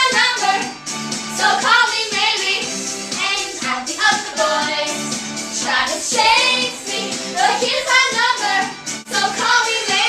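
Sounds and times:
pop song with high singing voice: 0.0s - 10.0s.

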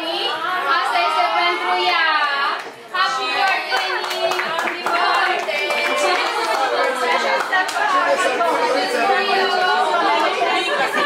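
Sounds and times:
group of adults chattering: 0.0s - 11.0s.

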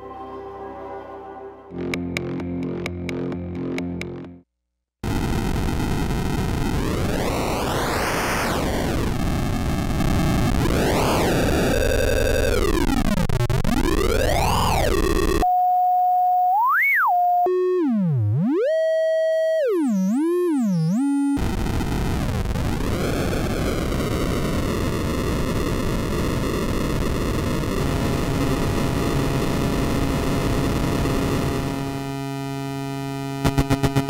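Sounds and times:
buzzy synth tone sweeping: 1.7s - 4.4s, 16.4s - 34.0s
noisy buzzing drone: 1.7s - 4.4s, 21.0s - 34.0s.

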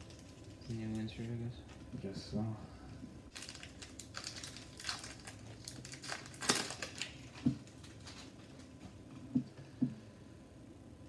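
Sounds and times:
foil wrapper tearing and crinkling: 3.3s - 8.7s.

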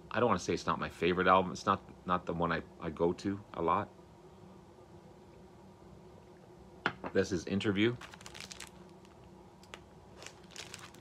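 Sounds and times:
plastic sleeve crinkling: 7.9s - 11.0s.

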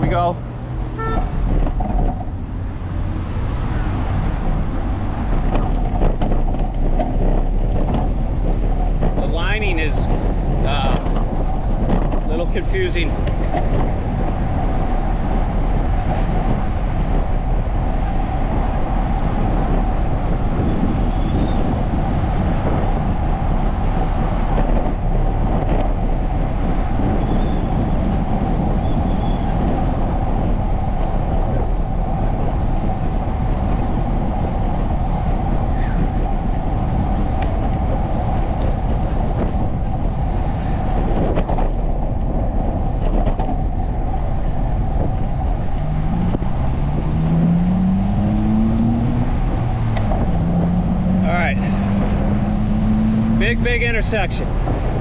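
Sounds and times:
passing car traffic hum: 0.0s - 55.0s
vehicle accelerating: 0.0s - 55.0s
wind on microphone: 0.0s - 55.0s.

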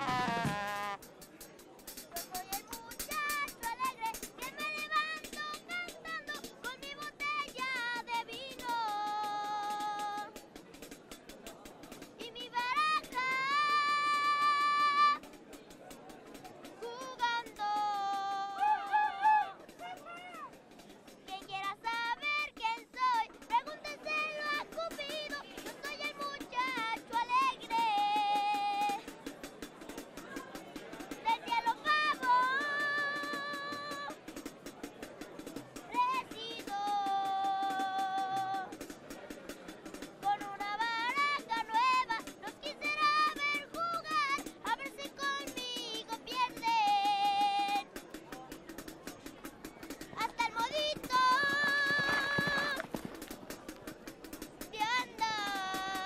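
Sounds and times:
small live band: 0.0s - 1.2s
drum kit steady beat: 0.0s - 18.6s, 24.6s - 56.0s
boy singing into microphone: 2.3s - 10.3s, 12.2s - 15.2s, 16.8s - 18.6s, 21.3s - 29.0s, 31.3s - 34.1s, 35.9s - 38.7s, 40.2s - 47.8s, 50.2s - 52.8s, 54.8s - 56.0s.

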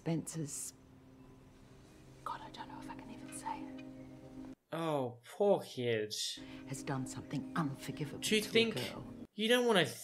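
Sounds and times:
woman whispering: 2.2s - 3.8s.

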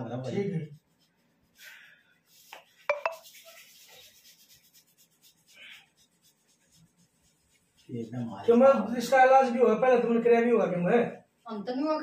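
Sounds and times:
hands rubbing on skin: 0.0s - 12.0s.

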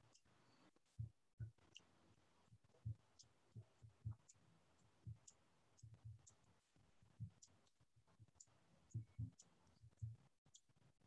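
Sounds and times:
soft taps and clicks: 0.0s - 10.7s.

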